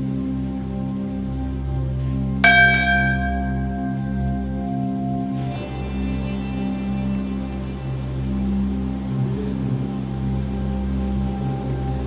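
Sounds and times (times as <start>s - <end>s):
background music with low drone: 0.0s - 12.0s
bell struck: 2.4s - 6.4s.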